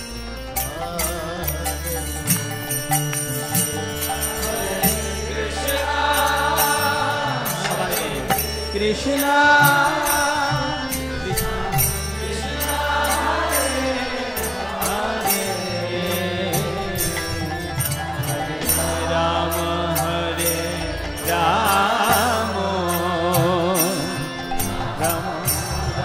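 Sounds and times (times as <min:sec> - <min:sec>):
sharp high percussion strokes: 0:00.0 - 0:26.0
sustained low drone: 0:00.0 - 0:26.0
voices chanting: 0:03.7 - 0:26.0.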